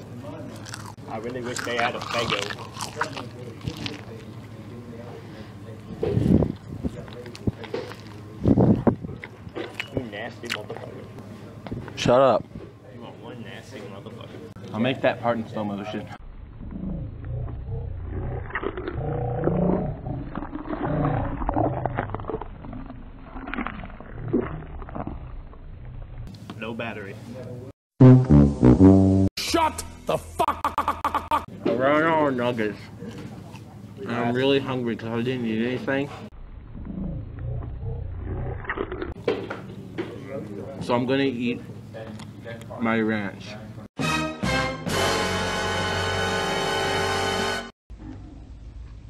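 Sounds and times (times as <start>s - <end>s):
slowed-down deep voices: 16.2s - 26.3s, 36.4s - 39.1s
deep muffled growl: 16.5s - 26.3s, 36.6s - 39.2s.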